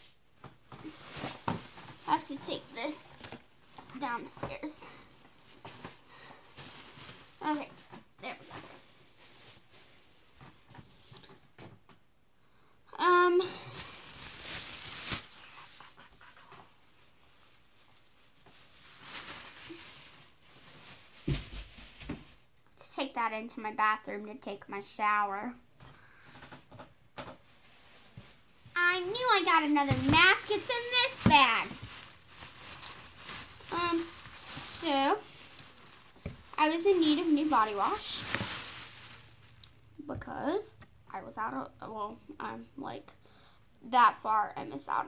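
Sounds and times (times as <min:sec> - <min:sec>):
plastic bags rustling: 0:00.4 - 0:11.2, 0:13.5 - 0:22.6, 0:26.2 - 0:40.0.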